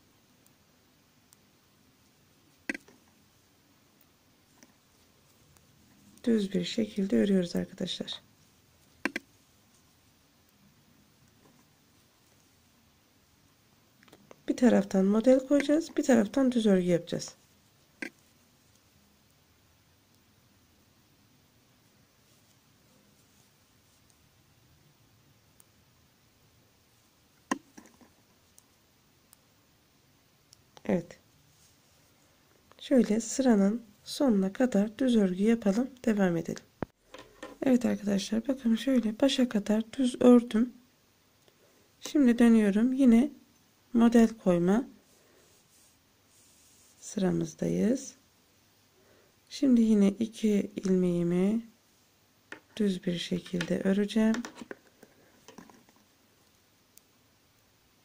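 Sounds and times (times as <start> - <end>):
knitting needles clicking: 2.5 - 3.2, 8.8 - 9.8, 14.0 - 14.5, 15.2 - 16.2, 18.0 - 18.9, 27.4 - 28.7
metal knitting needles clicking: 2.6 - 3.1, 9.0 - 9.3.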